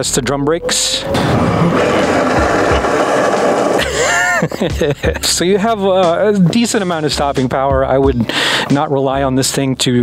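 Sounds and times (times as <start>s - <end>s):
scooter brakes scraping: 1.1s - 4.4s.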